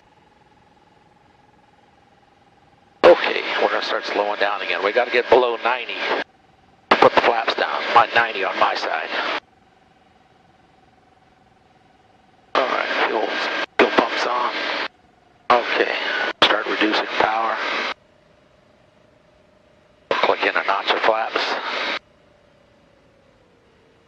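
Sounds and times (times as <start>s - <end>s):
aircraft engine drone: 0.0s - 24.0s
radio voice transmissions: 3.0s - 6.3s, 6.9s - 9.4s, 12.6s - 14.9s, 15.5s - 18.0s, 20.1s - 22.0s.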